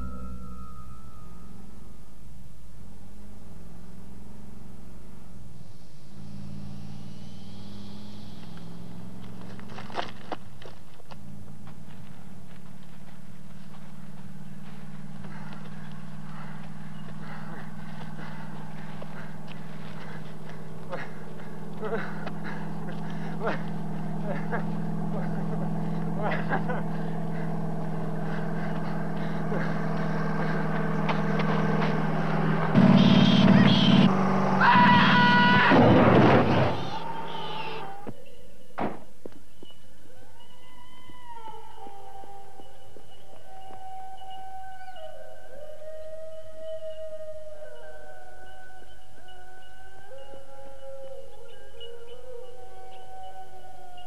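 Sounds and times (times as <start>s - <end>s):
low droning hum: 0.0s - 54.0s
lorry engine running: 2.9s - 38.1s.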